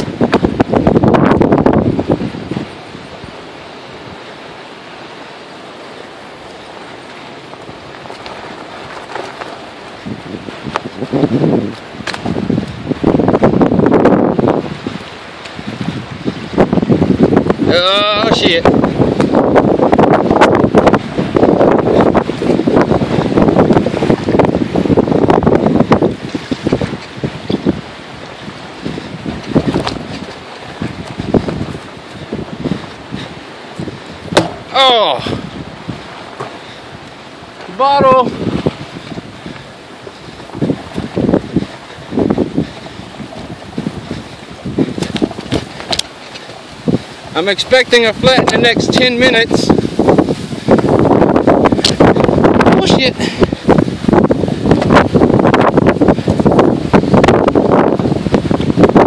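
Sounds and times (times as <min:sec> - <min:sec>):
off-road vehicle on dirt trail: 0:00.0 - 0:59.0
wind buffeting microphone: 0:00.0 - 0:59.0
vehicle driving over gravel: 0:07.0 - 0:12.8.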